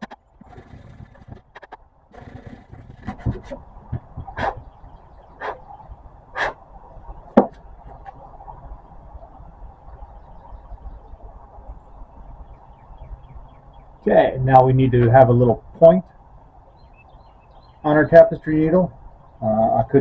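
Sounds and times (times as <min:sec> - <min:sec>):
wood scuffs: 0:00.0 - 0:04.6.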